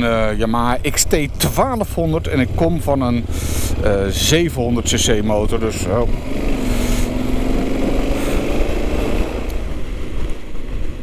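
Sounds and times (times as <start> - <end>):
motorcycle engine under throttle: 0.1 - 11.0.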